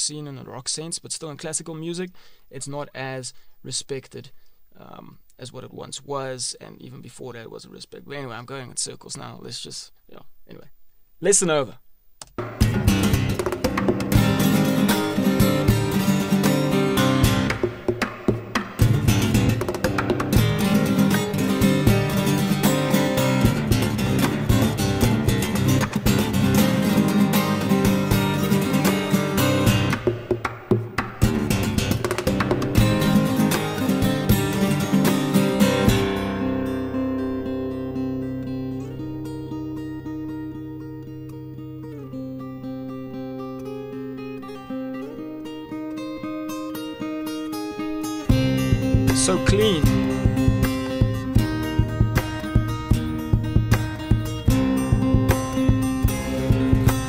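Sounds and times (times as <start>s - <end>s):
fingerstyle acoustic guitar: 12.4s - 57.0s.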